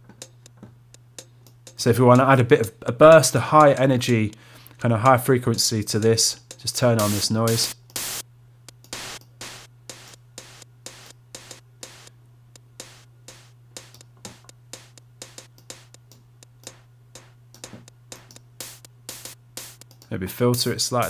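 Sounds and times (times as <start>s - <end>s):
drum machine hi-hat pattern: 0.0s - 21.0s
low steady hum: 0.0s - 21.0s
synth noise burst: 7.0s - 8.2s, 8.9s - 12.1s, 12.8s - 15.9s, 16.7s - 19.8s.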